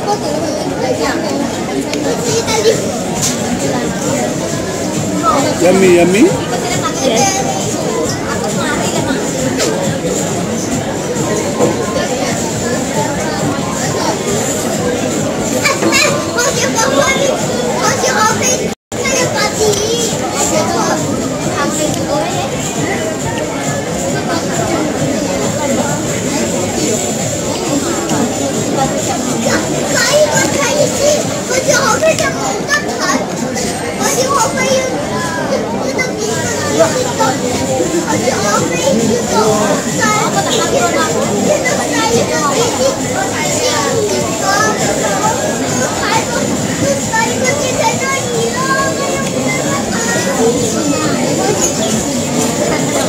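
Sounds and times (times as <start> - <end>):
background chatter of voices: 0.0 - 53.0
children playing: 0.0 - 53.0
people talking: 0.0 - 53.0.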